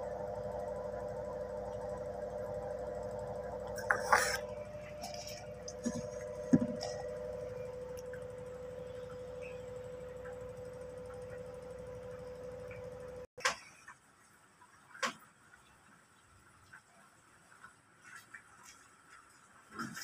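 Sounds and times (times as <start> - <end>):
steady one-tone hum: 0.0 - 17.9.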